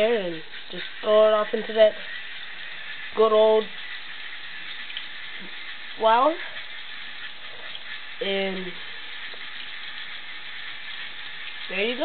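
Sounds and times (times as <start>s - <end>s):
chicken frying in hot grease: 0.0s - 12.0s.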